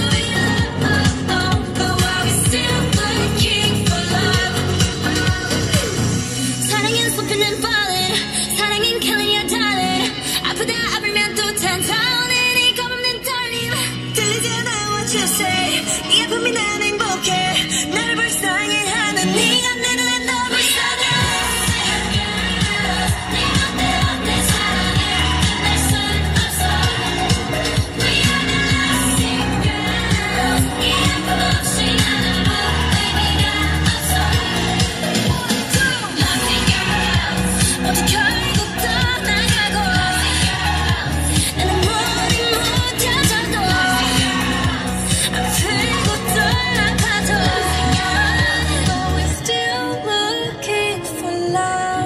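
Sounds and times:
pop dance music with vocals: 0.0 - 52.0.

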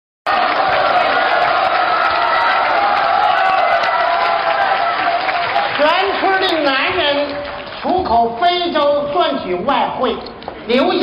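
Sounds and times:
audience applauding and cheering: 0.3 - 8.2.

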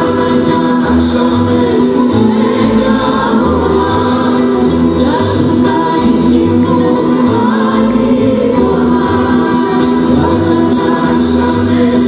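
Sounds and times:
acoustic guitar: 0.0 - 12.0
bouzouki: 0.0 - 12.0
double bass line: 0.0 - 12.0
voices singing together: 0.0 - 12.0.

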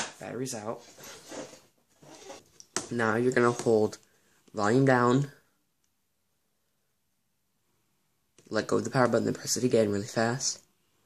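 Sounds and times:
man speaking: 0.0 - 1.0, 2.8 - 5.5, 8.4 - 10.7.

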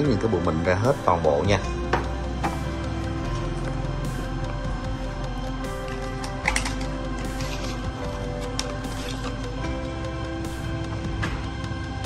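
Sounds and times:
background music sustained notes: 0.0 - 12.0.

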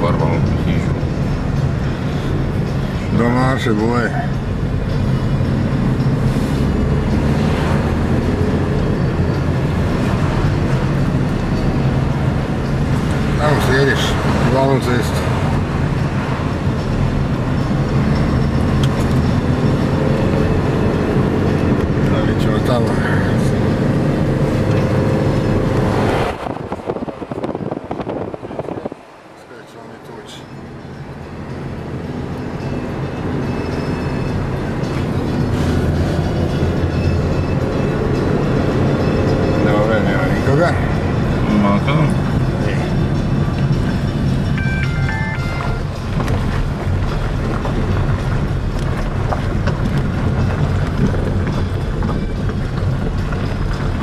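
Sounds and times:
car engine and road noise: 0.0 - 54.0.

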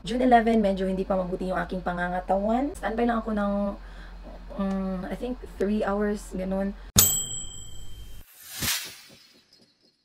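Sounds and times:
bright bell-like ding: 7.0 - 8.3.

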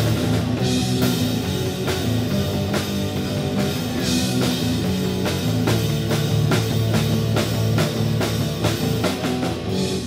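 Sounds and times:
drum kit: 0.0 - 10.0
electric guitar: 0.0 - 10.0.

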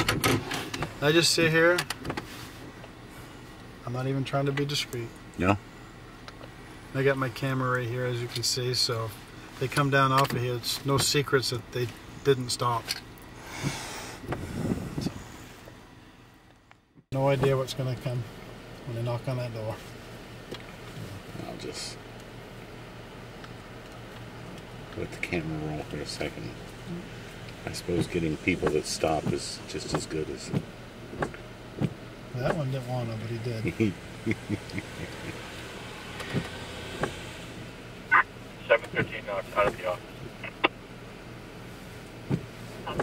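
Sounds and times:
car engine idling hum: 0.0 - 43.0.

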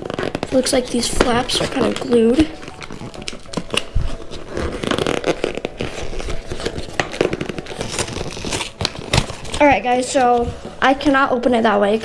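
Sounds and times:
paper rustling and scraping: 0.0 - 10.9.

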